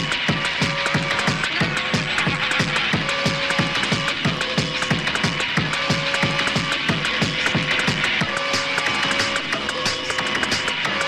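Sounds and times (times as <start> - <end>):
fast electronic dance music: 0.0 - 11.0.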